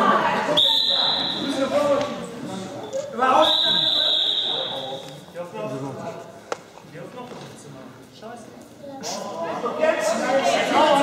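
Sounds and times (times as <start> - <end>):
voices echoing in hall: 0.0 - 11.0.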